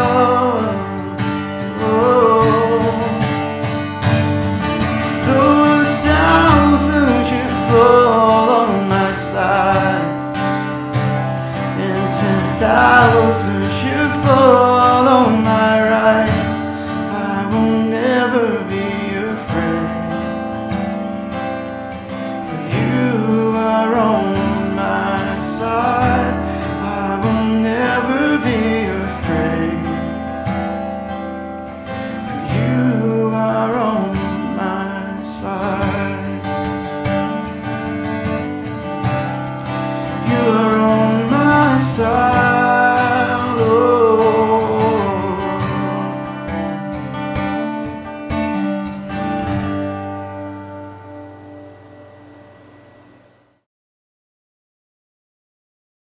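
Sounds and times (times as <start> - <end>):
man singing: 0.0 - 3.6, 4.7 - 10.5, 11.2 - 20.8, 22.3 - 30.4, 31.9 - 36.9, 39.6 - 46.9
acoustic guitar: 0.0 - 53.6.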